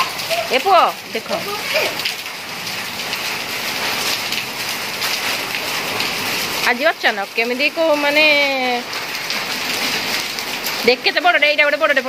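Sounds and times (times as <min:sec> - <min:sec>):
heavy rain and hail on paving: 0:00.0 - 0:12.0.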